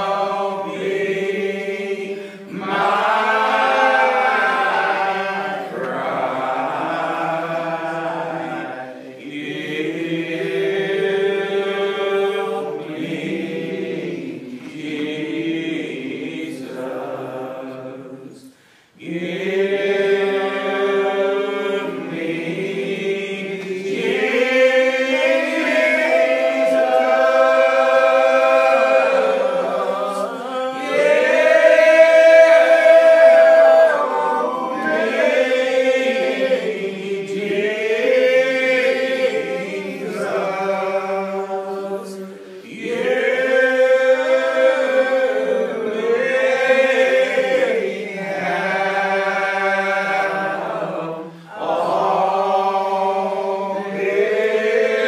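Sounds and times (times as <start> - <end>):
congregation singing a hymn: 0.0 - 55.0.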